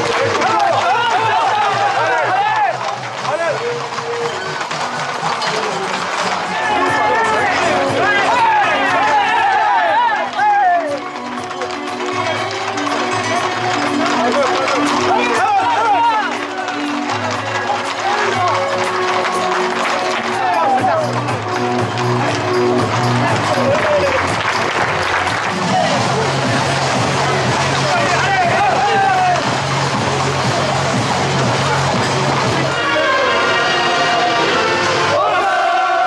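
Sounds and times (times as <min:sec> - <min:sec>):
men shouting: 0:00.0 - 0:04.7, 0:05.5 - 0:11.0, 0:14.0 - 0:18.8, 0:20.2 - 0:21.2, 0:27.6 - 0:29.5, 0:32.6 - 0:36.0
horses' hooves on road: 0:00.0 - 0:32.8
music with long held notes: 0:00.0 - 0:36.0
low music beat: 0:20.4 - 0:32.7.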